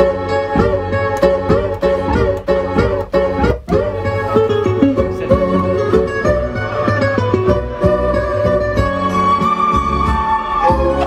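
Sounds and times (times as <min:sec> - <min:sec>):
turntable scratching: 0:00.0 - 0:07.8
low beat: 0:00.0 - 0:11.0.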